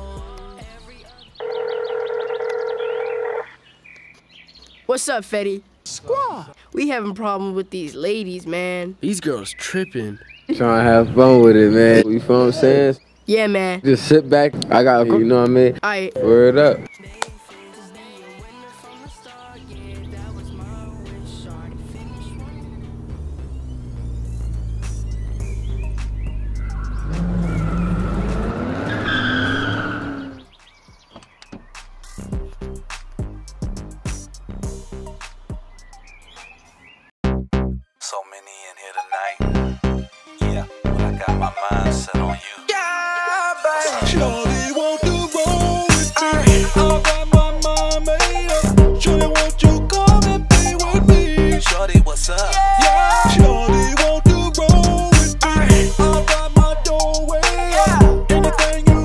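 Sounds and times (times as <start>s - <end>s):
video call ringing tone: 1.4s - 3.6s, 16.1s - 16.9s
low engine rumble: 19.5s - 28.9s, 31.6s - 36.0s, 44.1s - 59.0s
tyre squeal: 23.4s - 30.4s.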